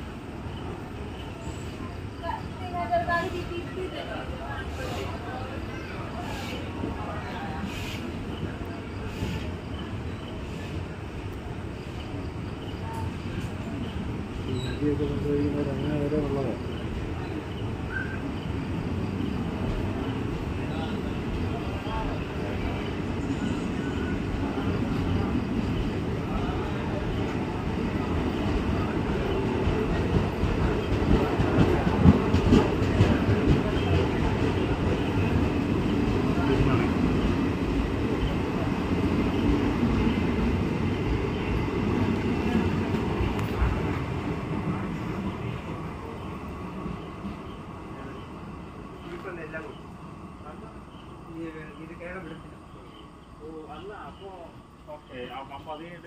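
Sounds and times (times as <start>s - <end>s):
train wheels rumbling on rail: 0.0s - 56.0s
clacks over rail joints: 29.2s - 35.2s.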